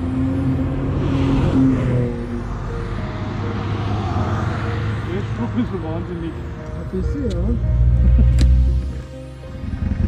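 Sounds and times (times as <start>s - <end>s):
road vehicle passing: 0.0s - 10.0s.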